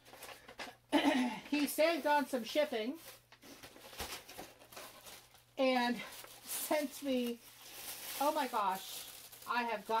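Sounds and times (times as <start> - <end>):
rustling of package contents: 0.0 - 0.9, 1.5 - 10.0.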